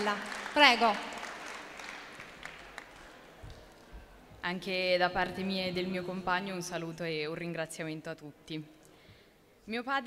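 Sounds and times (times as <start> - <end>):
applause: 0.0 - 3.9.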